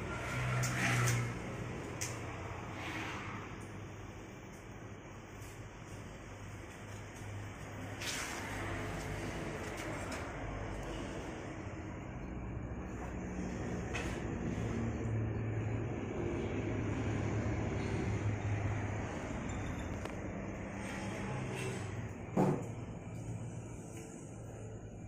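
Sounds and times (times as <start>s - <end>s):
low mechanical rumble: 0.0s - 25.0s.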